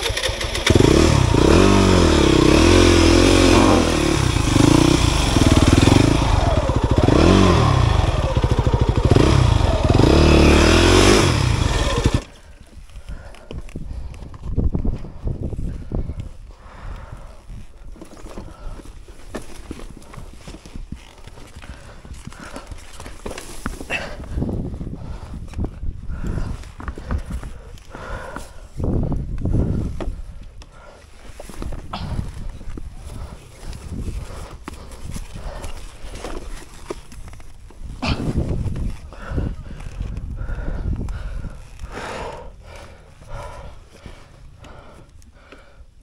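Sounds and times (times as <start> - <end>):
person breathing hard: 1.9 - 36.9, 37.8 - 46.0.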